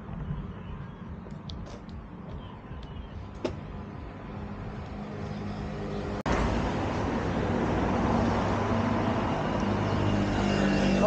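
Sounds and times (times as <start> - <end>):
road traffic: 0.0 - 11.0.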